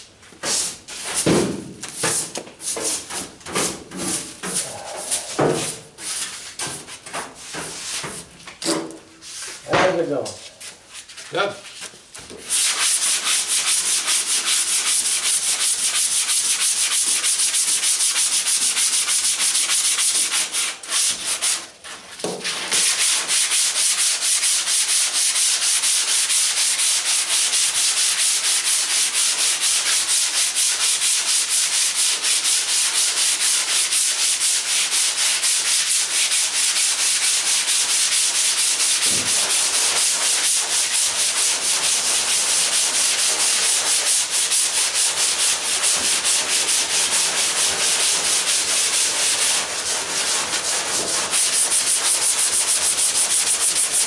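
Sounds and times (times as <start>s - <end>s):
sanding block scraping: 0.4s - 8.3s, 10.6s - 54.0s.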